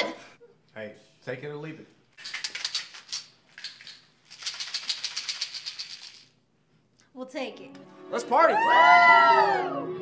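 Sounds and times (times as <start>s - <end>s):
pills rattling in bottle: 2.2s - 6.4s.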